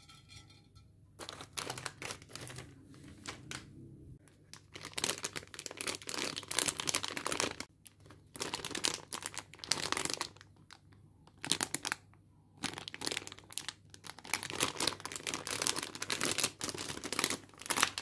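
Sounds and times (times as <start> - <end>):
plastic bag crinkling: 1.2 - 3.6, 4.3 - 18.0.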